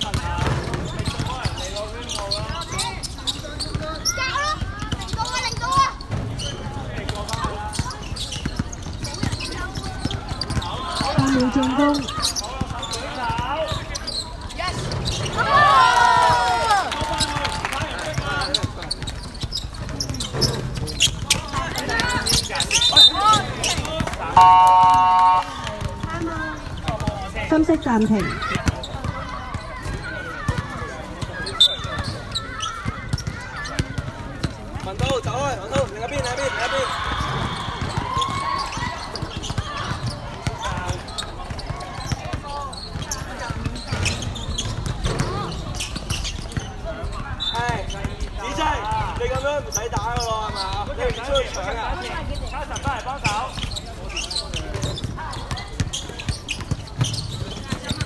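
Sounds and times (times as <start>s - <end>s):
people calling out: 24.3s - 25.8s
basketball bouncing on hard court: 37.8s - 47.2s.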